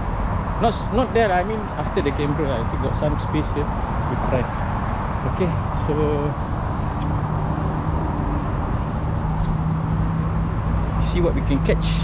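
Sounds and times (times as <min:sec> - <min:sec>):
constant low hum: 0:00.0 - 0:12.0
outdoor background rumble: 0:00.0 - 0:12.0.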